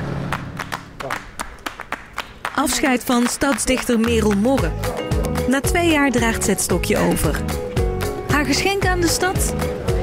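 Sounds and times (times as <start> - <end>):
scattered hand claps: 0.3 - 5.5
sombre music: 4.0 - 10.0.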